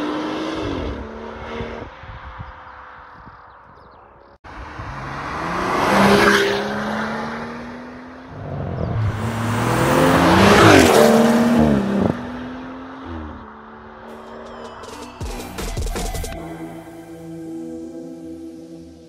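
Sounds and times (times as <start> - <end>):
car engine accelerating past: 4.7 - 14.4.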